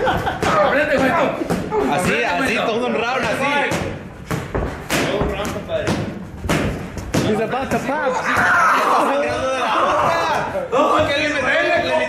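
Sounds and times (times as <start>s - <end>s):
boxing gloves thudding on pads: 3.1s - 7.8s.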